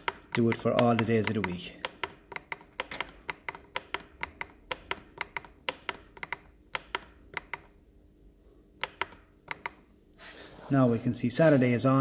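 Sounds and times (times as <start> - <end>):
push buttons clicking: 0.0 - 7.8, 8.8 - 9.9.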